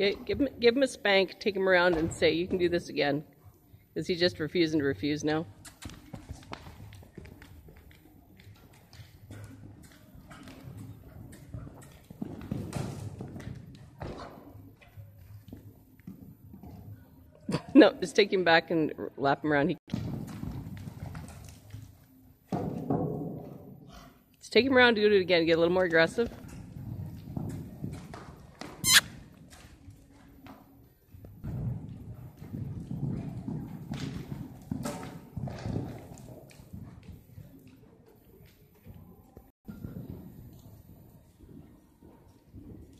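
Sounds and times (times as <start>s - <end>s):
horse hoofbeats on soft dirt: 0.0s - 17.6s, 19.8s - 42.9s.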